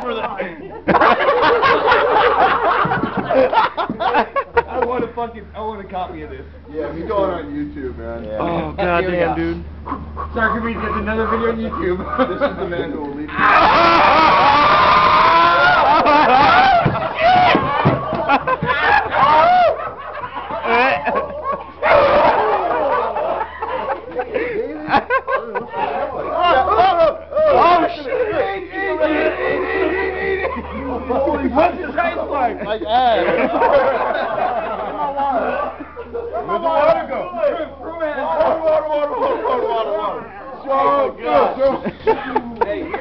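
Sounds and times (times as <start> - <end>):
men laughing loudly: 0.0 - 5.2, 9.9 - 43.0
men yelling whoops: 13.3 - 20.0, 21.8 - 23.8, 26.2 - 30.6.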